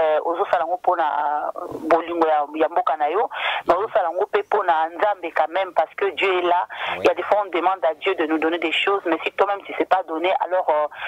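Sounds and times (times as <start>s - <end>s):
woman talking over telephone: 0.0s - 11.0s.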